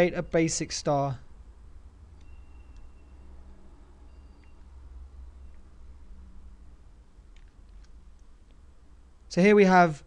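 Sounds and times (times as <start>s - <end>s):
low electrical hum: 0.0s - 10.0s
faint high beep: 2.1s - 5.8s
small clicks: 7.3s - 8.6s.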